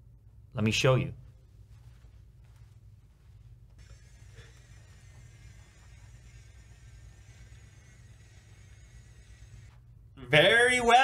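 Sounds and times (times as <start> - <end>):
curtain motors whining: 2.5 - 11.0.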